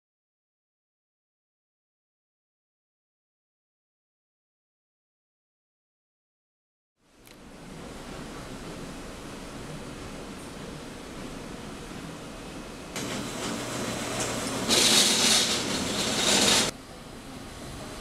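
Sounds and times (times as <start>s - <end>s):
loud hissing machine noise: 7.5s - 18.0s
steady machine noise: 7.5s - 18.0s.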